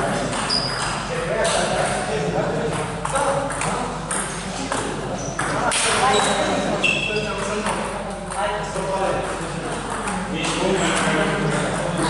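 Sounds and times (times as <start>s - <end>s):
ball bouncing on table: 2.7s - 6.0s.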